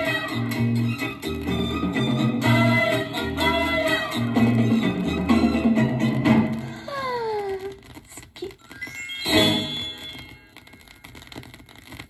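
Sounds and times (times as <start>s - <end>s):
vinyl surface crackle and clicks: 0.0s - 5.3s, 6.2s - 12.0s.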